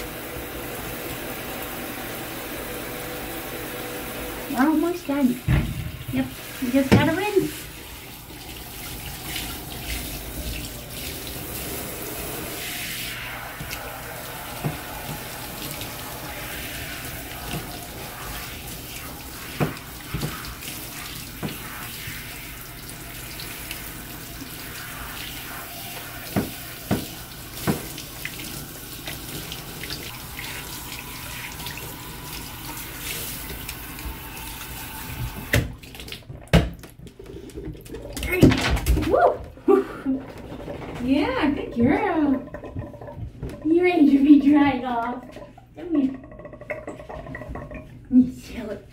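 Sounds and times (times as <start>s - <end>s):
shower sprayer running water: 0.0s - 36.3s, 39.2s - 45.4s.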